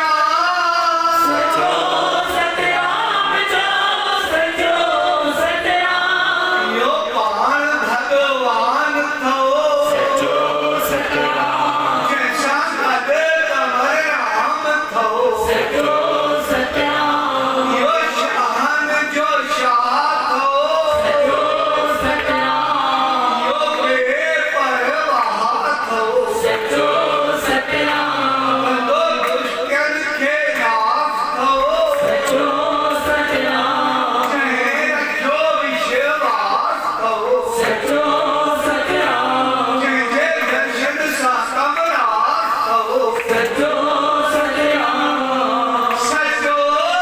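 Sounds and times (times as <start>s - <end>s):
men chanting in unison: 0.0s - 47.0s.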